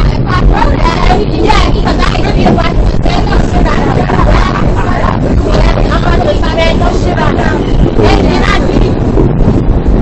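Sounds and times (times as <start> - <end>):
people talking loudly: 0.0 - 9.2
subway train rumbling: 0.0 - 10.0.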